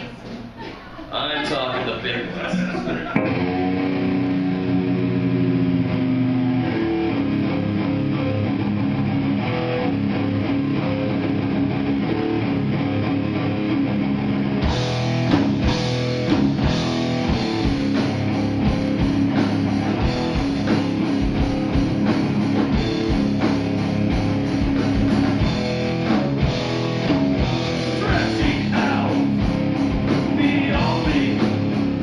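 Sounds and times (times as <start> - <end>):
electric guitars and bass chords: 2.4 - 32.0
drum kit with cymbals: 14.6 - 32.0.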